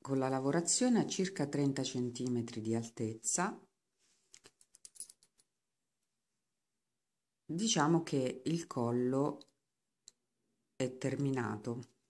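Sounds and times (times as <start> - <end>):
knitting needles clicking: 4.3 - 5.5.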